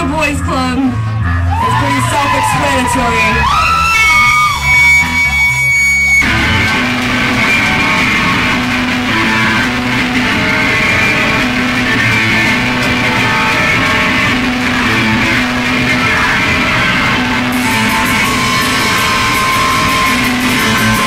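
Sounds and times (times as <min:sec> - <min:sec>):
high tone ringing: 0:00.0 - 0:21.0
punk rock band playing: 0:00.0 - 0:21.0.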